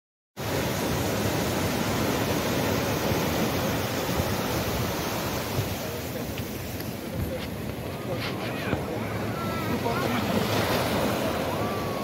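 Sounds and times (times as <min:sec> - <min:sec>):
ocean surf on beach: 0:00.4 - 0:12.0.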